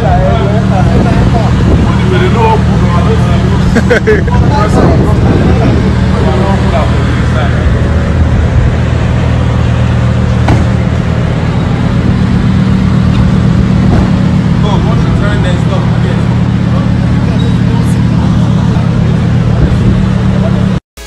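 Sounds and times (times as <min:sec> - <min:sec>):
sports car engine idling: 0:00.0 - 0:20.8
voices talking: 0:00.0 - 0:20.8.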